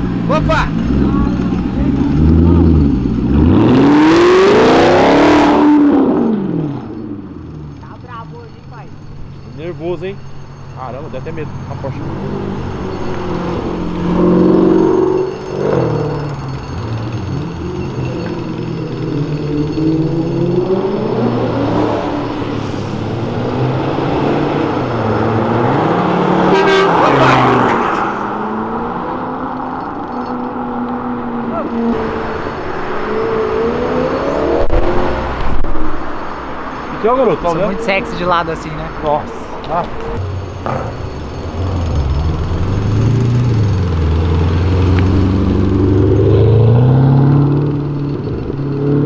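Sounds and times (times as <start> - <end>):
cars passing: 0.0 - 49.0
car horn: 26.2 - 28.0.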